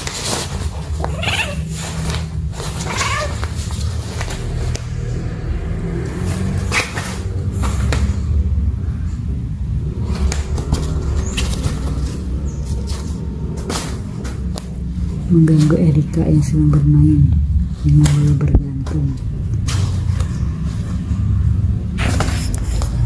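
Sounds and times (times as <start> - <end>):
steady low rumble: 0.0 - 23.0
kitten meow: 1.1 - 1.8, 2.8 - 3.4.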